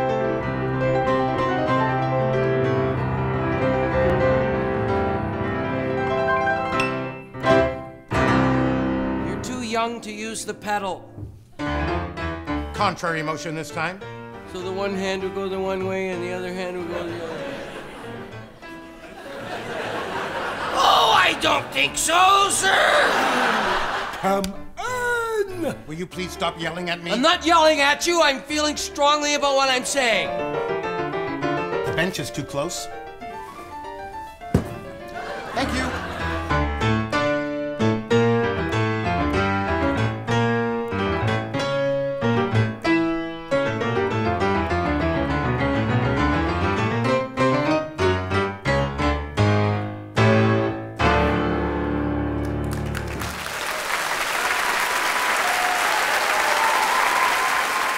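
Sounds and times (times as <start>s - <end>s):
soft piano notes: 0.0s - 19.3s
piano chords: 0.0s - 24.8s, 25.4s - 55.7s
sharp thump: 34.5s - 35.0s.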